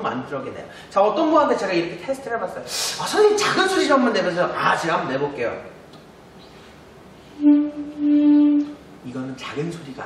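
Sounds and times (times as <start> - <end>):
soft saxophone note: 7.4 - 8.8.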